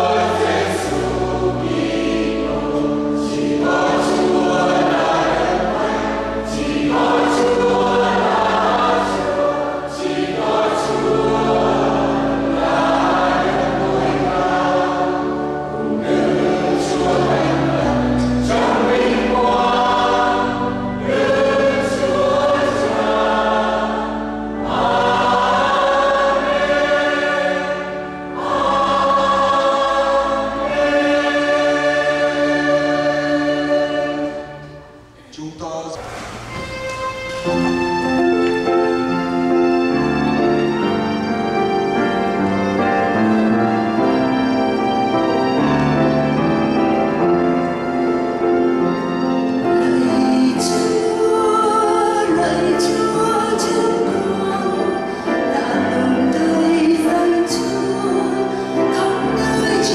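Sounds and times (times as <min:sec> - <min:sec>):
mixed choir singing a hymn: 0:00.0 - 0:35.0, 0:36.0 - 0:59.9.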